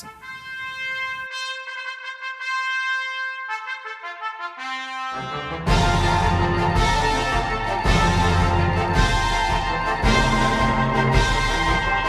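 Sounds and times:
brass holding high notes: 0:00.0 - 0:12.0
concert band playing a march: 0:04.6 - 0:12.0.

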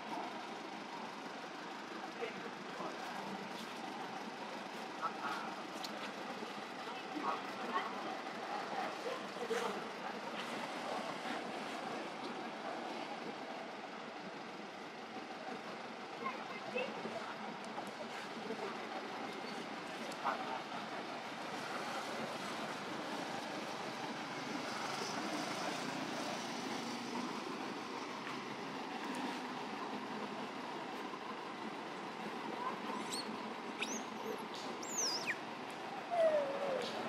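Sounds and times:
outdoor background noise: 0:00.0 - 0:37.0.

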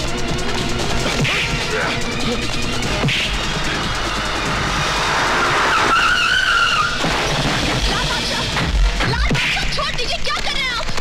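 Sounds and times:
car tyres screeching: 0:00.8 - 0:07.8.

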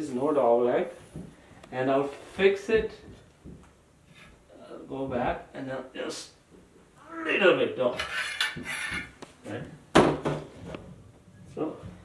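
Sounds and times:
metal conduit clanking and scraping: 0:08.0 - 0:09.1.

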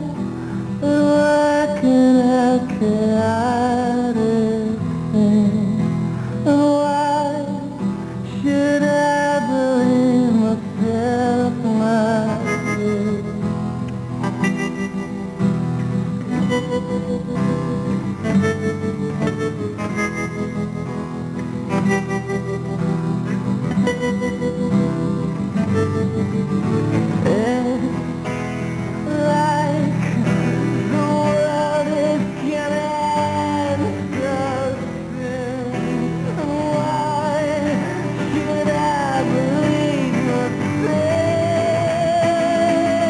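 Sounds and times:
acoustic guitars playing: 0:00.0 - 0:43.0
man singing: 0:27.2 - 0:28.1, 0:29.0 - 0:43.0.

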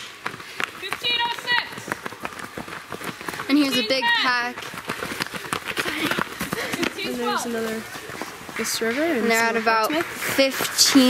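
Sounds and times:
running footsteps on dry leaves: 0:00.0 - 0:11.0.

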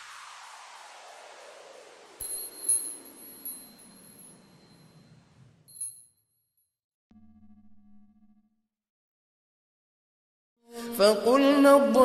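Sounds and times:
high sparkling chime tones: 0:02.2 - 0:06.1.

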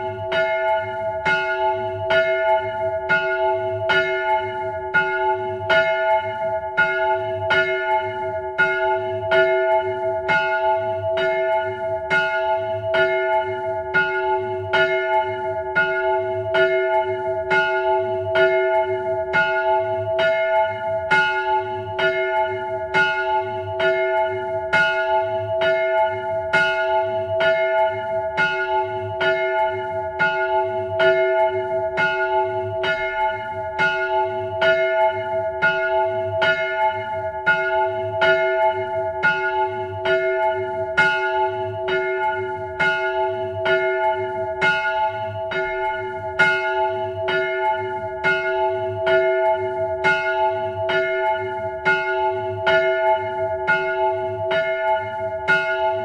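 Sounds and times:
church bell ringing: 0:00.0 - 0:56.0.

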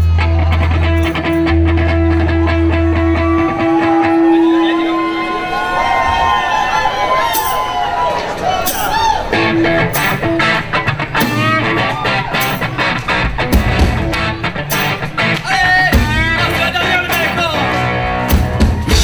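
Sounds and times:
bass guitar: 0:00.0 - 0:05.3, 0:08.4 - 0:19.0
electric guitar: 0:00.0 - 0:05.9, 0:08.4 - 0:19.0
drum kit beat: 0:08.7 - 0:19.0.

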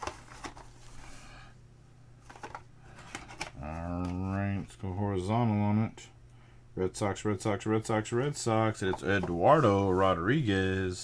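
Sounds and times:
packaging rustling and clicks: 0:00.0 - 0:00.9, 0:02.2 - 0:04.2.

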